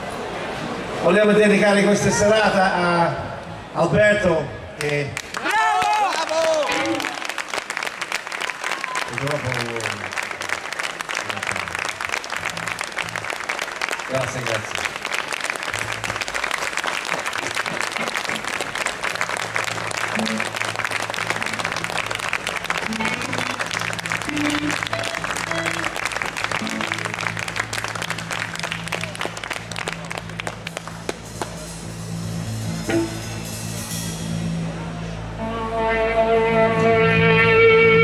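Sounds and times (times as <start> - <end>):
audience applauding: 4.8 - 31.8
sustained keyboard chord: 19.7 - 30.4
short high keyboard notes: 31.3 - 38.0.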